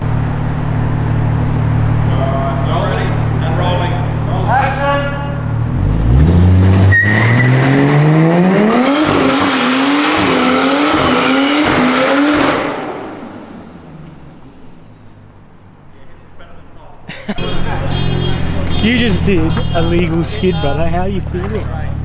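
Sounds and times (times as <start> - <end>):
car engine revving: 0.0 - 15.8
tyre squeal: 6.9 - 7.7.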